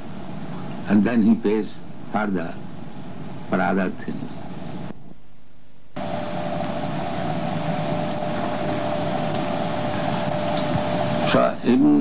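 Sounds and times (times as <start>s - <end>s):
film soundtrack hiss: 0.0s - 12.0s
mid-pitched hum: 0.0s - 12.0s.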